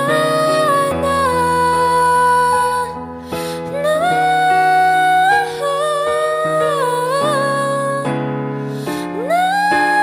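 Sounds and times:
girl singing with vibrato: 0.0s - 10.0s
sustained piano chords: 0.0s - 10.0s.

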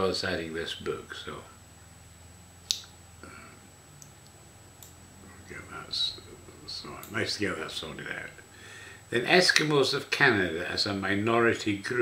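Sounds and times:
low room hum: 0.0s - 12.0s
sharp click: 2.6s - 3.0s.

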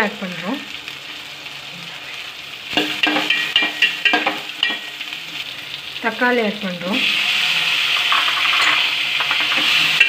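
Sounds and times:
vegetables sizzling in hot oil: 0.0s - 10.0s.

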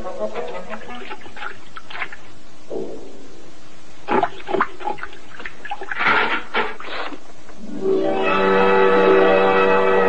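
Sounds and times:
music with held notes: 7.6s - 10.0s.

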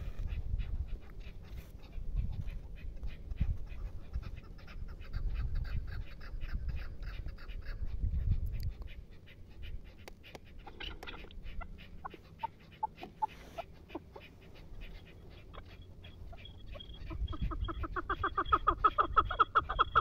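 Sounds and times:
partridges clucking: 10.0s - 13.3s.

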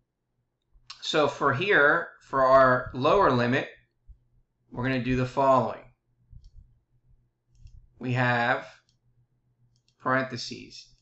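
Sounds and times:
faint low hum: 2.0s - 11.0s
computer mouse clicks: 6.4s - 6.7s, 7.5s - 7.9s, 9.7s - 10.1s.

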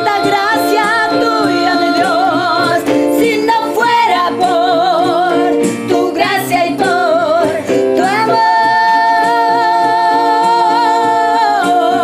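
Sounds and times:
instrumental accompaniment: 0.0s - 12.0s
women singing worship song: 0.0s - 12.0s.

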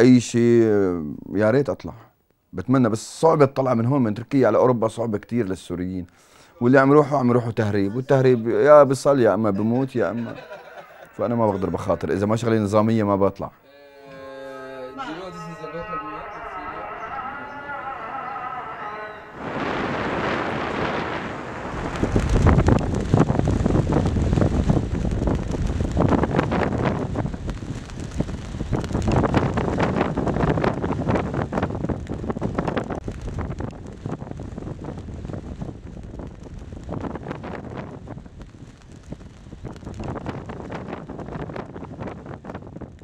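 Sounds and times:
strong wind buffeting microphone: 19.3s - 43.0s
cloth flag flapping: 19.4s - 43.0s.

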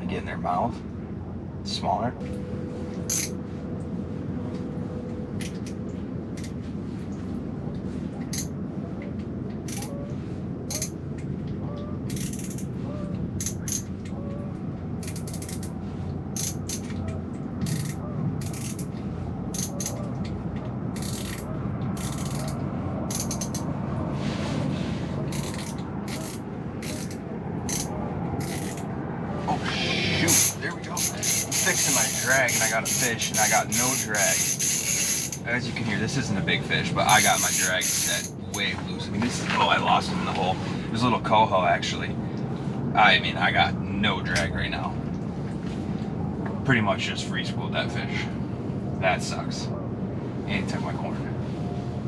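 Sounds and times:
fishing reel drag clicking: 34.3s - 35.4s.

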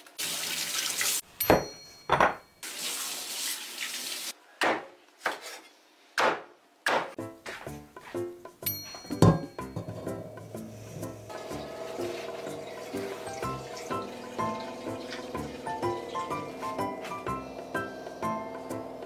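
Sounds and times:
tap water running into sink: 0.0s - 1.2s, 11.3s - 19.0s
background music: 7.2s - 19.0s.

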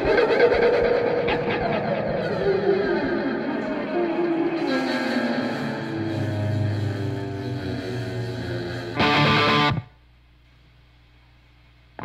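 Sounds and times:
band music with guitar and voice: 0.0s - 9.9s.

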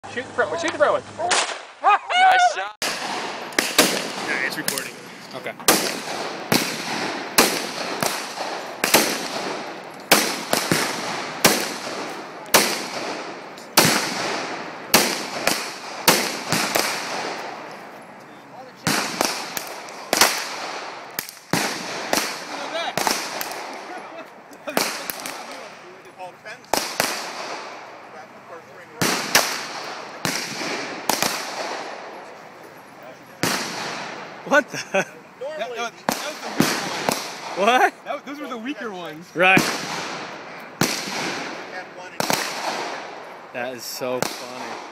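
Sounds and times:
handgun shots echoing: 2.8s - 5.0s, 5.6s - 17.6s.

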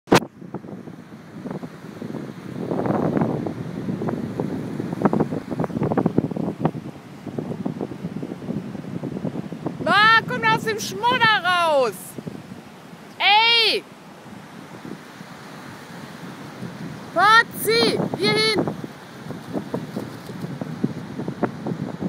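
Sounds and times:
wind buffeting microphone: 0.1s - 22.0s
small waves washing ashore: 0.2s - 22.0s
person shouting: 9.9s - 12.1s, 13.2s - 13.8s, 17.2s - 18.6s.

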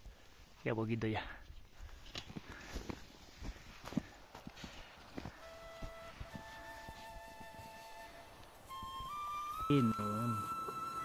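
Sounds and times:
footsteps in deep snow: 1.6s - 9.6s
faint music of long held notes: 5.1s - 11.0s.

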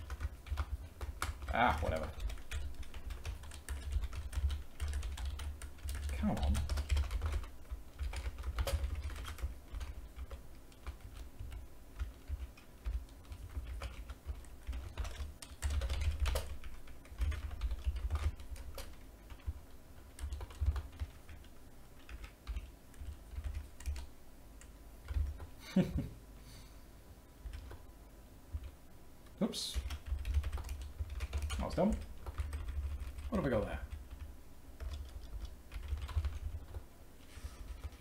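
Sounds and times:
typing on computer keyboard: 0.0s - 25.5s, 27.4s - 27.8s, 29.8s - 36.8s, 37.6s - 38.0s.

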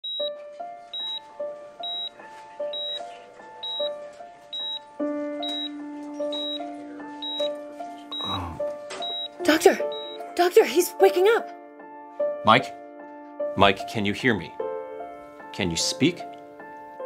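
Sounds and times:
patient monitor beeping: 0.0s - 4.0s, 4.6s - 10.4s
soft background music: 0.0s - 17.0s.

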